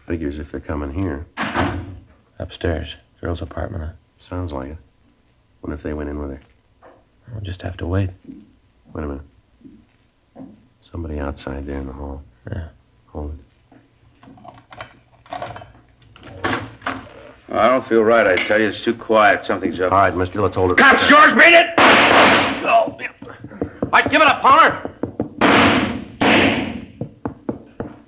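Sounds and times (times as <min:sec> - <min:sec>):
loud gunshot with echo: 0:21.8 - 0:22.7, 0:25.4 - 0:26.9
sharp knocks: 0:21.8 - 0:22.7, 0:23.5 - 0:28.0
faint footstep taps and clicks: 0:26.9 - 0:28.0.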